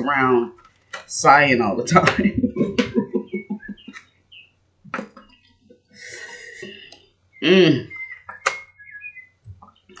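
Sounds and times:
woman laughing: 0:02.0 - 0:04.0
faint high chirps: 0:05.2 - 0:10.0.

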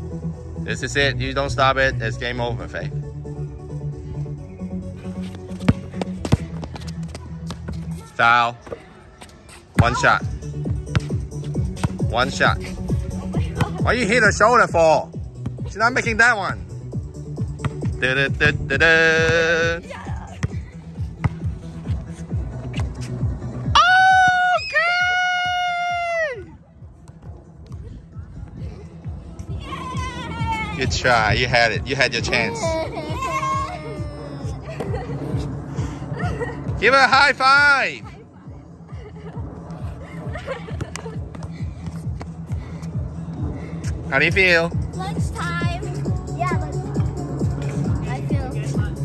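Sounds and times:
background music: 0:00.0 - 0:08.6, 0:09.8 - 0:49.0
girl laughing: 0:32.2 - 0:36.8, 0:38.8 - 0:41.4
girl crying out on one pitch: 0:32.4 - 0:34.7.

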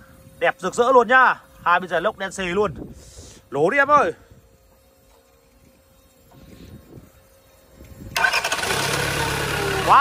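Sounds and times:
diesel engine starting and running: 0:08.2 - 0:10.0.

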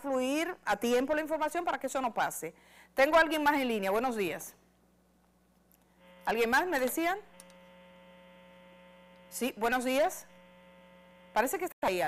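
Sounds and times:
telephone line electrical hum: 0:05.4 - 0:12.0.

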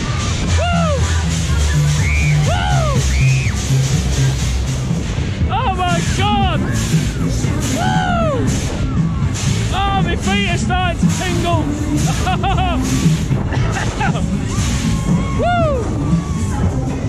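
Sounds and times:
voices whooping: 0:00.0 - 0:03.8, 0:05.7 - 0:09.4, 0:14.3 - 0:17.0
loud dance music with heavy bass: 0:00.0 - 0:17.0.

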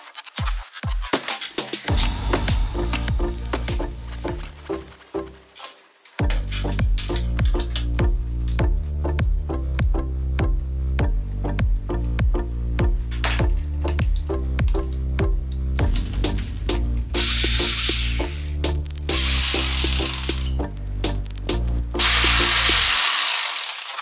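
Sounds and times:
electronic music with steady beat: 0:00.0 - 0:05.6, 0:06.2 - 0:23.0
electric jigsaw motor: 0:19.2 - 0:20.4, 0:22.0 - 0:24.0.

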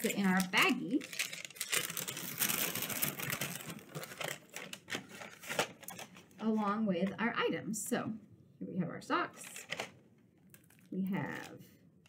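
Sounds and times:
paper bag rustling and crackling: 0:00.0 - 0:06.4.

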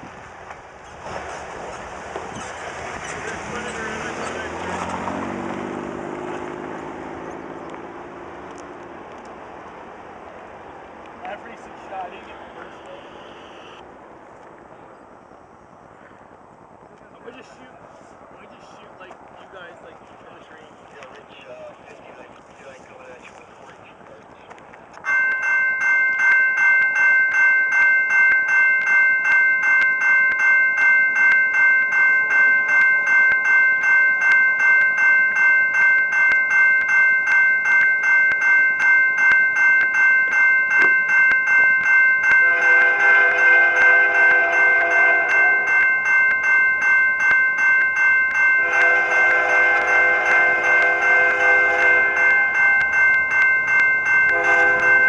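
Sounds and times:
level crossing warning bell: 0:25.0 - 0:55.0
locomotive horn blasts: 0:42.3 - 0:45.8, 0:48.6 - 0:52.8, 0:54.3 - 0:55.0.

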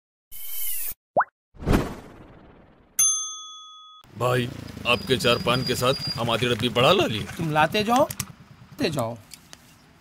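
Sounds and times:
rising bloop: 0:00.8 - 0:03.0
whoosh: 0:01.6 - 0:03.0.

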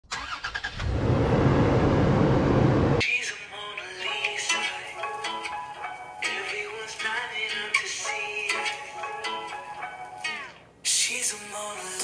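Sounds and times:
engine low rumble: 0:00.7 - 0:03.0.

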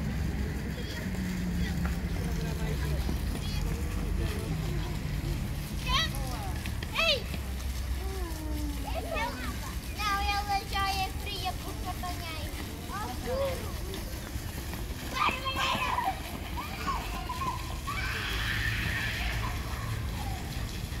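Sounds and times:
children calling out and squealing: 0:05.7 - 0:12.2, 0:15.0 - 0:21.0.

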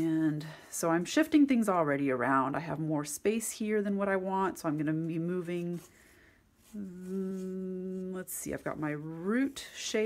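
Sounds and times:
woman humming: 0:06.7 - 0:08.3.

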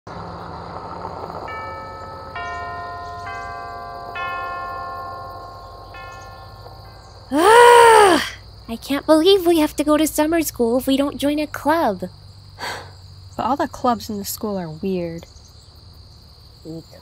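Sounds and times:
chime bell ringing notes: 0:01.5 - 0:07.3
loud high yell: 0:07.3 - 0:08.4.

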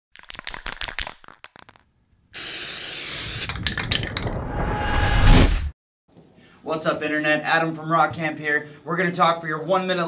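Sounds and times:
aerosol spray hissing: 0:02.4 - 0:03.5.

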